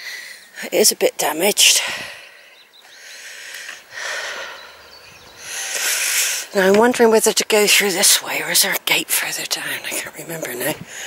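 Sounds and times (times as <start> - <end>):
outdoor ambience: 0.0 - 11.0
person breathing: 1.8 - 6.6.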